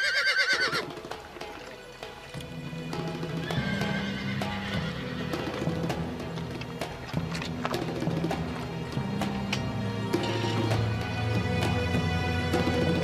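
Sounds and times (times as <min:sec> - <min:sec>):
horse neighing: 0:00.0 - 0:00.9, 0:03.4 - 0:05.9
hooves clip-clopping on dirt: 0:00.0 - 0:11.2
background music low notes: 0:00.0 - 0:13.0.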